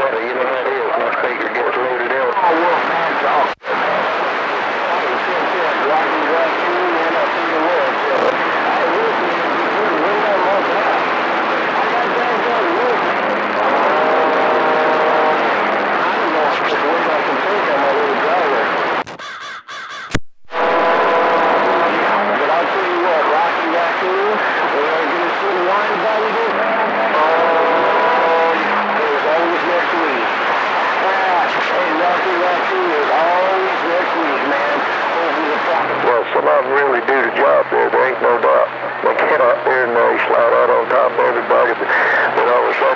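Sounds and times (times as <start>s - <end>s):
faint garbled radio voices: 0.0s - 19.2s, 20.5s - 42.9s
loud radio static: 0.0s - 19.3s, 20.4s - 42.9s
radio click: 8.2s - 8.4s, 20.1s - 20.6s.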